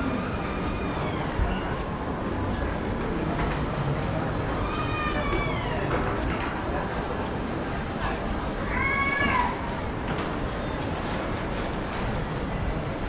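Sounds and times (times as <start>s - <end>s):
hubbub of people: 0.0s - 13.0s
small child wailing: 4.6s - 5.8s.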